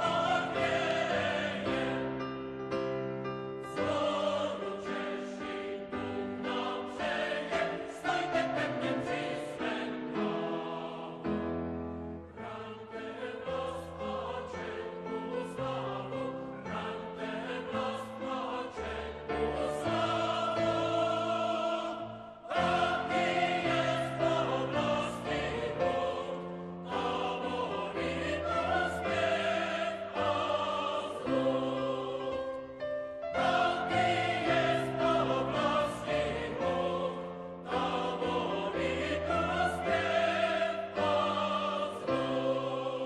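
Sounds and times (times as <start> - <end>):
choir singing long held notes: 0.0 - 43.0.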